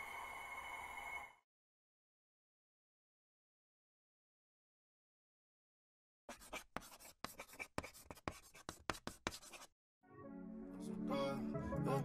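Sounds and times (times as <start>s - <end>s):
pen scratching on paper: 6.3s - 9.7s
music: 10.0s - 12.0s.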